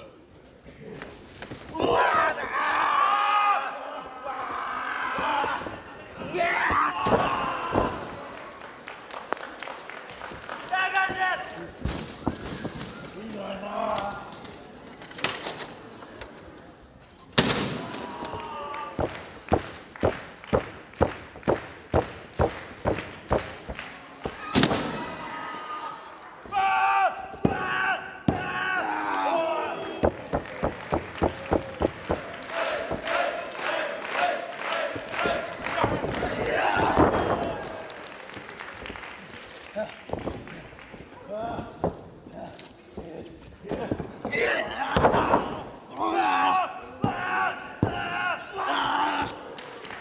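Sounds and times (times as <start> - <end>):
crowd noise: 0.0 - 50.0
crowd shouting: 31.0 - 37.9, 44.3 - 49.6.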